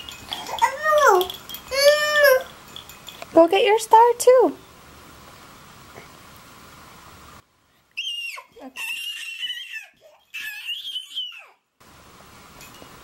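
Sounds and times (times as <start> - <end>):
high-pitched squealing voice: 8.0 - 11.6.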